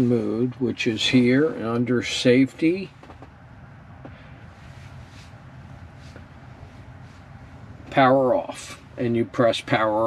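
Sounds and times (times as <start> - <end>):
electric car cabin hum: 0.0 - 10.0.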